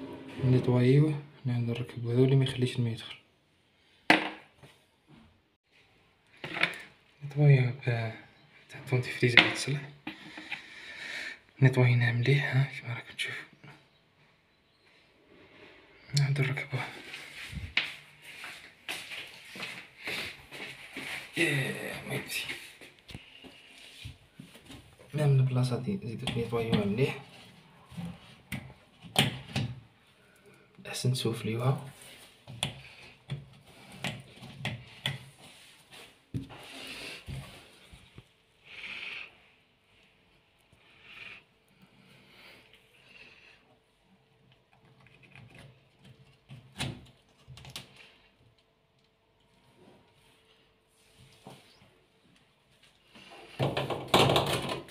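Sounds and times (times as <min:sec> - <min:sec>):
person speaking: 0:16.1 - 0:18.0, 0:21.3 - 0:22.8, 0:25.0 - 0:27.4, 0:30.8 - 0:32.0.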